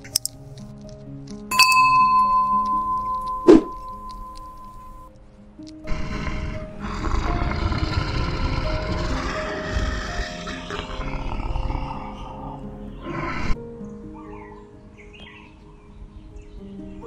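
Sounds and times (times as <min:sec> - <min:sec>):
soft piano music: 0:00.0 - 0:17.0
big cat growling: 0:05.9 - 0:13.6.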